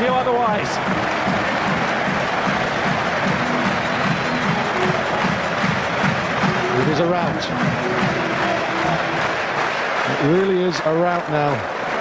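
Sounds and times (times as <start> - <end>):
crowd applauding: 0.0 - 12.0
stadium crowd cheering: 0.0 - 12.0.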